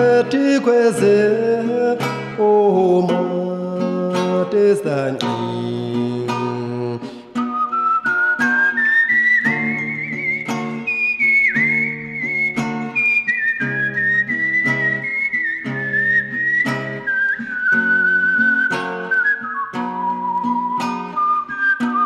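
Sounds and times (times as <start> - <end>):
picked acoustic guitar: 0.0 - 22.0
whistled melody: 7.4 - 22.0.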